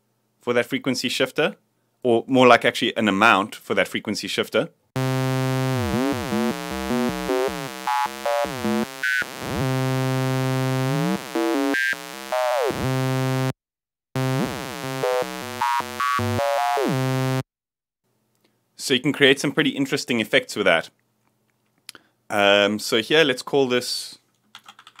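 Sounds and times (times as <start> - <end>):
buzzy synth tone gliding: 5.0 - 13.5, 14.2 - 17.4.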